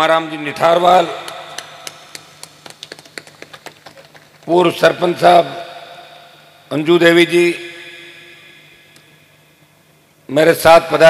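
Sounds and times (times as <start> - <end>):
scattered hand claps: 1.2 - 4.5.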